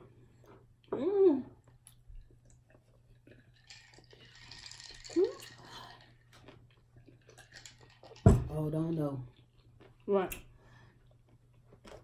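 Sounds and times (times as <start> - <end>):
sipping soda: 3.5 - 6.2.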